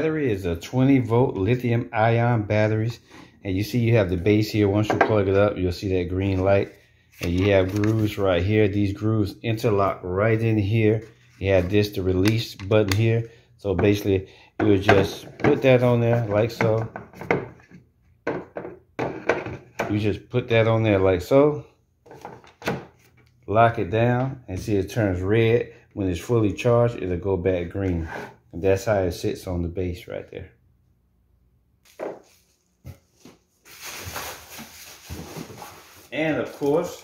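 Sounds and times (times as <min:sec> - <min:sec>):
plastic knocking and scraping: 0:14.6 - 0:20.0, 0:22.0 - 0:23.1
cardboard box rustling: 0:31.9 - 0:37.0.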